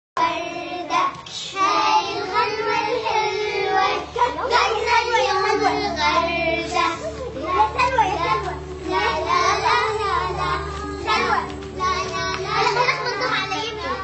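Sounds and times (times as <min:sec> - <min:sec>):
children singing: 0:00.2 - 0:14.0
children speaking: 0:00.2 - 0:14.0.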